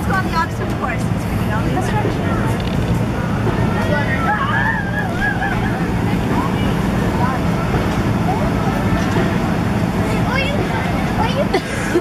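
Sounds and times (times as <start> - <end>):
children calling out: 3.6 - 7.6.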